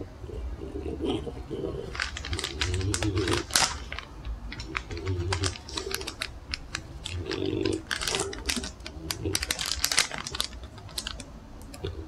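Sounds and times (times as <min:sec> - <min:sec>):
plastic pouch crinkling: 0:01.8 - 0:11.4.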